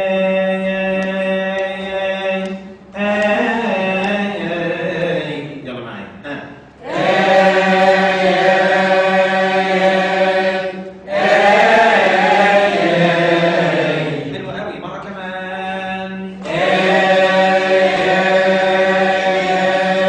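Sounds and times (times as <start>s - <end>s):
man chanting a hymn: 0.0s - 6.6s, 7.3s - 20.0s.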